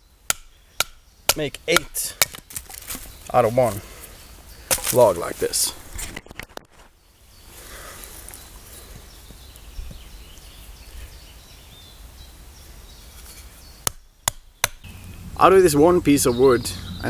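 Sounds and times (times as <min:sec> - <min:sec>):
small birds chirping: 0:00.0 - 0:05.9, 0:06.5 - 0:17.0
wooden baton striking knife: 0:00.3 - 0:02.4.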